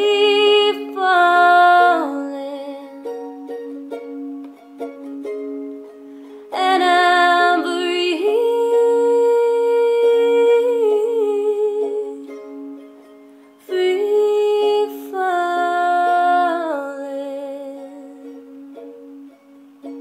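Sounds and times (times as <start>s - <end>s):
woman singing wordlessly: 0.0s - 3.2s, 6.5s - 12.4s, 13.6s - 19.3s
plucked strings: 0.0s - 20.0s.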